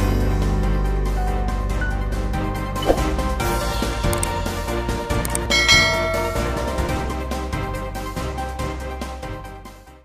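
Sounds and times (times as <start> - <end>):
background music: 0.0 - 10.0
bell-like chime: 5.5 - 7.4.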